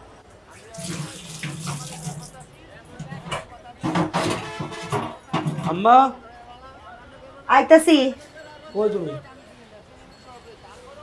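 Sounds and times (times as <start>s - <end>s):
water running from tap: 0.7s - 2.4s.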